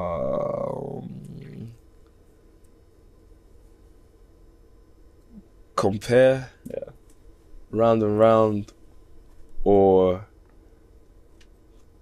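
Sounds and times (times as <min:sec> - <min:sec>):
man saying umm: 0:00.0 - 0:01.8, 0:05.8 - 0:06.9
low steady hum: 0:00.0 - 0:12.0.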